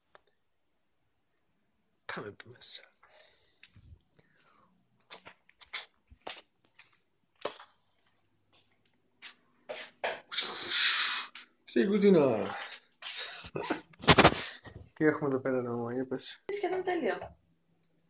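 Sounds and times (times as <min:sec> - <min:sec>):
loud hiss: 0:10.3 - 0:11.4.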